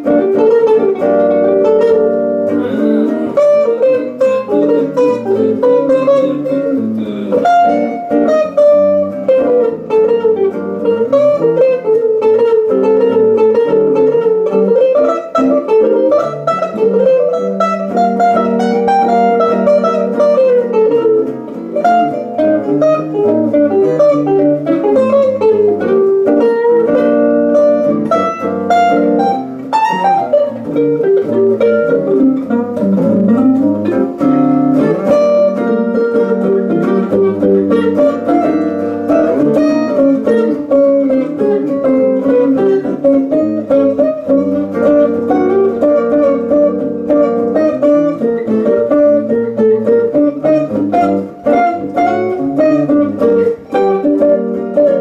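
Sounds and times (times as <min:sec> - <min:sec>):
jazz guitar duo playing: 0:00.0 - 0:55.0.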